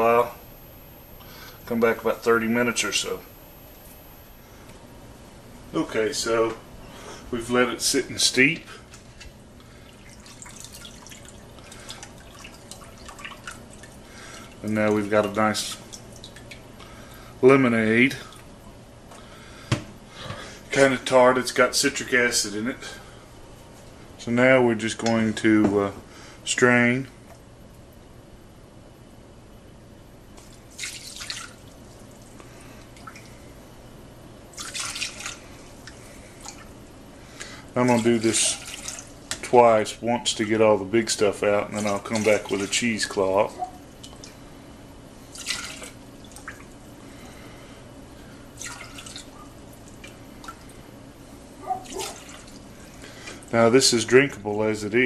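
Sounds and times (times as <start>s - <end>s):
water splashing through strainer: 10.0s - 14.0s, 30.4s - 31.7s, 34.6s - 35.4s, 37.8s - 39.2s, 41.8s - 42.9s, 45.3s - 46.7s, 48.6s - 50.7s, 51.8s - 52.6s.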